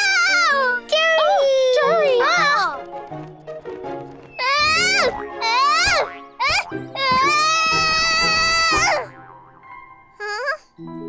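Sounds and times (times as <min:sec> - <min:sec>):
soft background music: 0:00.0 - 0:11.0
cartoon character screaming: 0:04.4 - 0:09.1.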